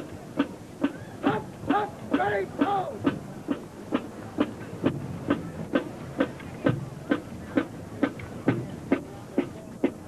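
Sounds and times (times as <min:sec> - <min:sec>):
marching drum beat: 0:00.0 - 0:10.0.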